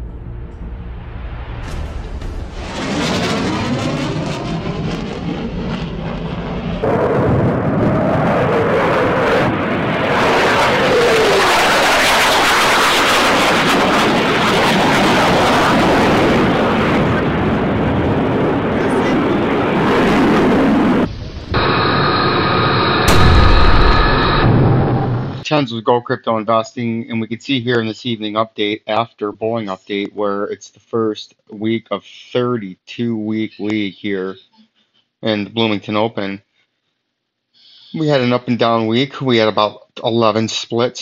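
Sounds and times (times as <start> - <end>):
deep boom: 0.0 - 5.8, 17.4 - 25.4
explosions: 0.4 - 25.4
jet aircraft: 2.0 - 25.4
gunfire: 23.0 - 25.4.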